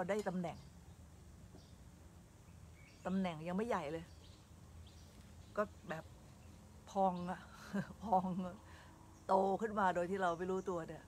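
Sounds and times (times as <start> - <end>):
woman speaking: 0.0 - 0.6, 3.0 - 4.1, 5.5 - 6.1, 6.9 - 8.7, 9.3 - 11.0
faint steady hum: 0.0 - 11.0.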